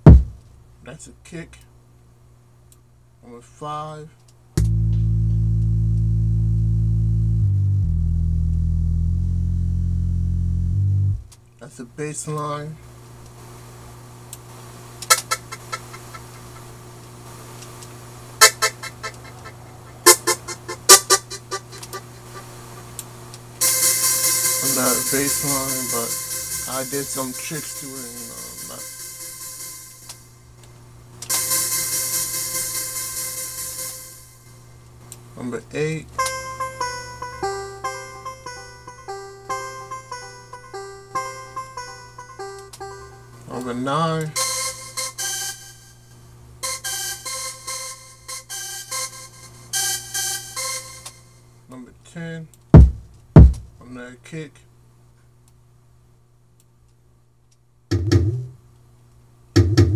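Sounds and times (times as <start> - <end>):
steady low hum: 0.0 - 55.0
plucky synth notes: 4.6 - 11.2, 36.2 - 43.4.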